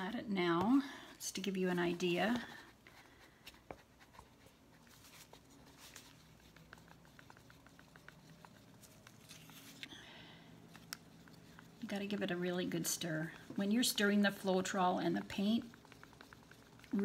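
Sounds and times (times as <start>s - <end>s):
stir stick scraping thick paint: 1.3s - 9.9s, 10.7s - 17.0s.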